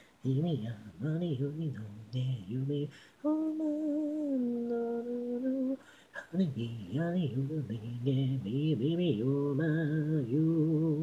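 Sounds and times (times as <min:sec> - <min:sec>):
woman singing: 0:00.2 - 0:11.0.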